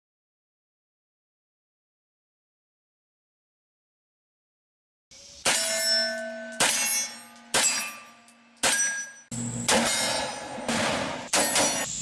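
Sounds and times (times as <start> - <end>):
steel targets ringing: 5.4 - 12.0.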